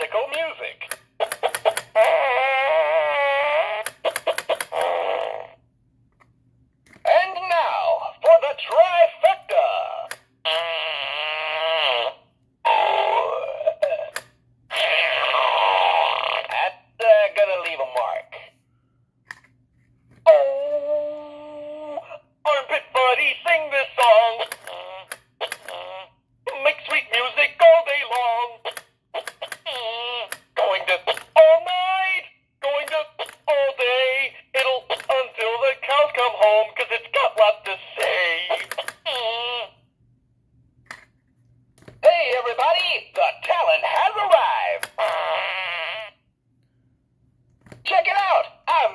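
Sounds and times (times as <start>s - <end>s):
novelty toy voice-like sound: 0.0s - 5.6s, 6.9s - 18.6s, 20.2s - 39.9s, 41.9s - 46.3s, 47.8s - 48.9s
fart sounds from small speaker: 1.4s - 5.6s, 10.4s - 13.6s, 14.7s - 16.7s, 24.4s - 26.2s, 45.0s - 46.2s.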